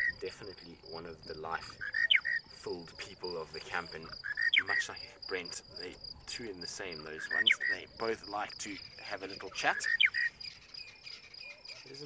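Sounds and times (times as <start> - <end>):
steady high background tone: 0.0 - 12.0
lark singing whistled phrase: 1.8 - 2.5, 4.2 - 4.9, 7.2 - 7.8, 9.7 - 12.0.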